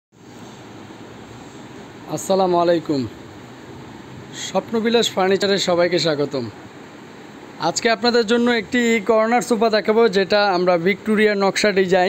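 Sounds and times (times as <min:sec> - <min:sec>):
room background hiss: 0:00.2 - 0:12.0.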